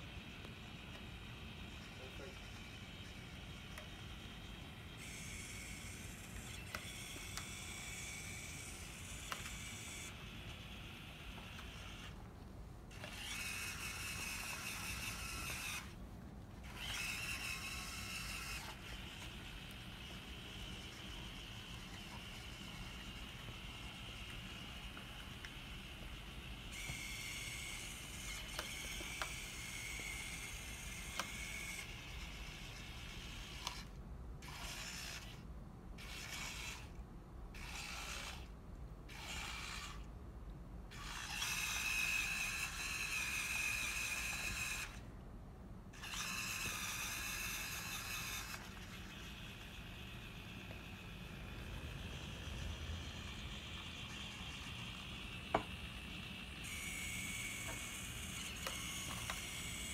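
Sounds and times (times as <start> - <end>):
servo motors whining: 0.0 - 12.2, 12.9 - 16.0, 16.6 - 38.5, 39.1 - 40.1, 40.9 - 45.1, 45.9 - 59.9.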